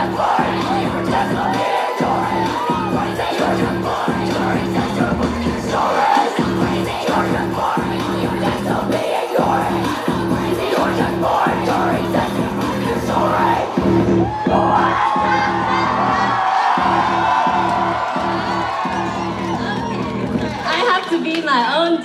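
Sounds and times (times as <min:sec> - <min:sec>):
heavy repeating bass beat: 0:00.0 - 0:20.7.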